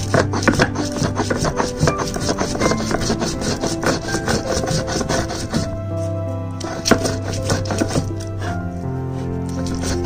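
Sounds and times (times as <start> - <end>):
stone roller scraping on stone: 0.0 - 8.6, 9.2 - 10.0.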